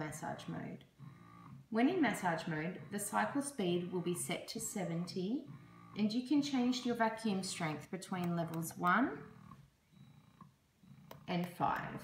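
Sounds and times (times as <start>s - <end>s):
breast pump motor humming: 0.0s - 12.0s.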